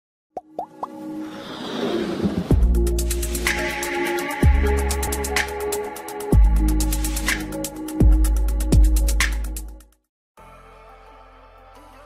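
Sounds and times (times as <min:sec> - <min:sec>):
rising swell into music: 0:00.9 - 0:07.0.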